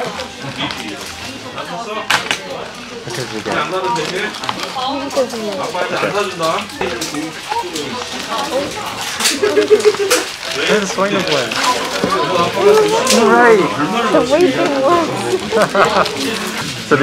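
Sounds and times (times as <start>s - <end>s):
two people talking: 3.0s - 17.0s.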